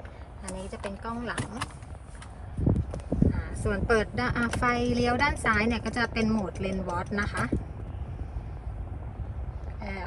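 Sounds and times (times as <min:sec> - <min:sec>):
car engine idling: 0:00.0 - 0:10.0
climate control fan running: 0:02.6 - 0:10.0.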